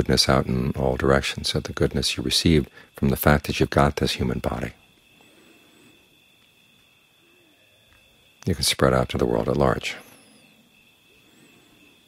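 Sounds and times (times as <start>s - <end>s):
faint high-pitched tone: 0.0s - 12.0s.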